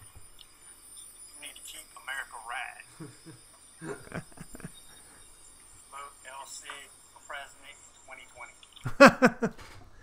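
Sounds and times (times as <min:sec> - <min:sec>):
man's voice from a video: 0:01.4 - 0:03.2, 0:05.9 - 0:08.9
people talking: 0:01.4 - 0:04.7, 0:05.9 - 0:09.1.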